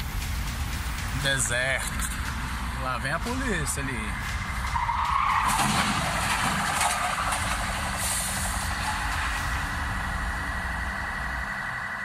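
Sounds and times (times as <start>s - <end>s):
street traffic noise: 0.0s - 12.0s
vehicle engine running: 0.0s - 12.0s.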